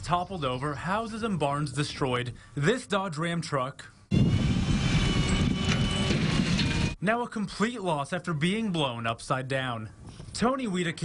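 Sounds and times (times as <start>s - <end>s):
mechanical rumble: 4.1s - 7.0s
metal clanking and creaking: 4.4s - 7.0s.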